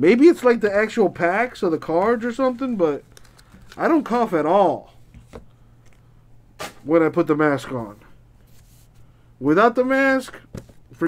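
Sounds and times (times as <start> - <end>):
man speaking: 0.0 - 3.1, 3.7 - 5.0, 6.8 - 8.1, 9.4 - 11.0.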